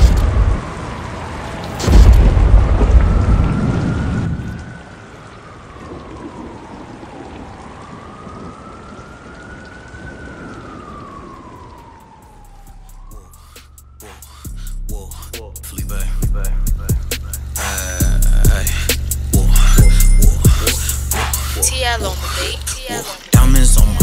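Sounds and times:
siren wailing: 0:00.0 - 0:24.0
steady rain: 0:00.0 - 0:24.0
thunderclap: 0:01.7 - 0:04.8.

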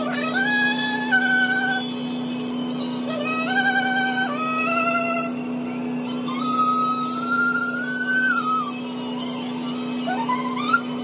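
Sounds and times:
gliding held melody line: 0:00.0 - 0:11.0.

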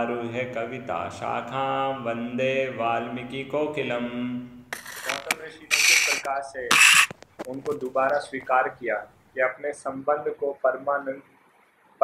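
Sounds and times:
harsh hissing bursts: 0:04.8 - 0:07.3.

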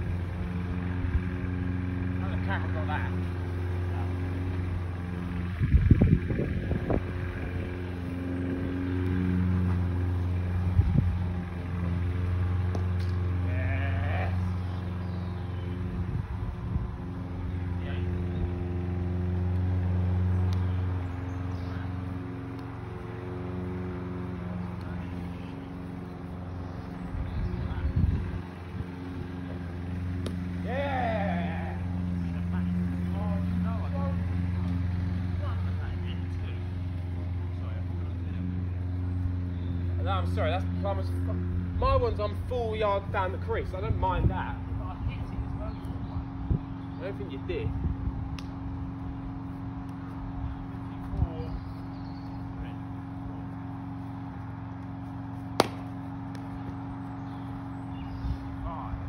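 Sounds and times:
steady engine-like hum: 0:00.0 - 0:59.0
short dull thumps: 0:55.4 - 0:56.8.

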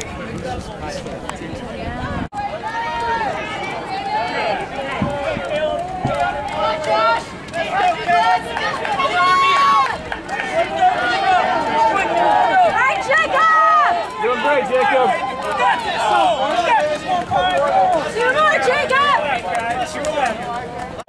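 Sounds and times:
loud high shout: 0:02.4 - 0:19.4
spectators calling out: 0:02.4 - 0:20.8.

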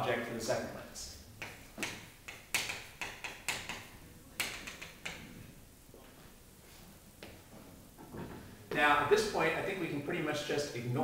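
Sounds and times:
chalk tapping and scratching: 0:01.4 - 0:05.2.

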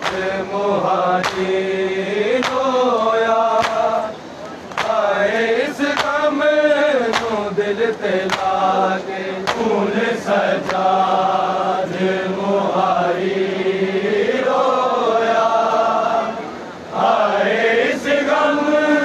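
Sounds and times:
men chanting a lament: 0:00.0 - 0:04.2, 0:04.8 - 0:19.0
hands slapping bare chests: 0:01.2 - 0:01.5, 0:03.6 - 0:03.8, 0:04.7 - 0:05.0, 0:05.9 - 0:06.2, 0:07.1 - 0:07.4, 0:08.3 - 0:08.6, 0:09.4 - 0:09.7.

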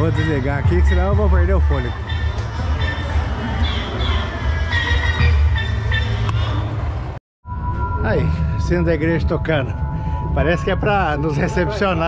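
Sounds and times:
music with steady bass: 0:00.0 - 0:06.2.

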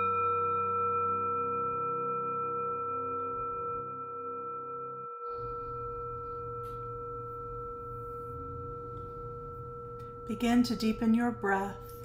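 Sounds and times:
singing bowl ringing: 0:00.0 - 0:12.0.

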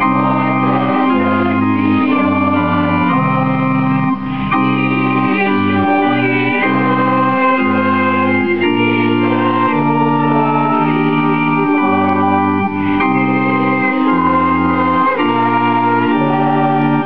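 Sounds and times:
electronic organ chords: 0:00.0 - 0:17.0.

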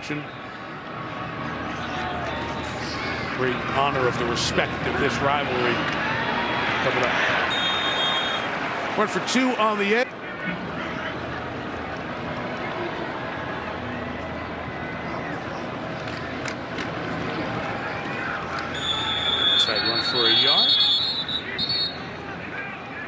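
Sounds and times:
stadium crowd noise: 0:00.0 - 0:23.0
shrill referee whistles: 0:07.4 - 0:08.5, 0:18.7 - 0:22.1.

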